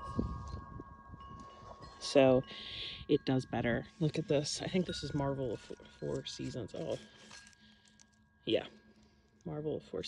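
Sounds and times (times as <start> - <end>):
light wind: 0.0 - 9.5
wind chimes ringing: 0.0 - 10.0.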